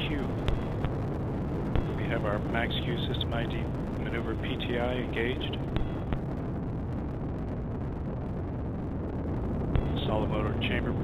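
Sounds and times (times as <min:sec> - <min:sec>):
rocket motor rumbling: 0:00.0 - 0:11.0.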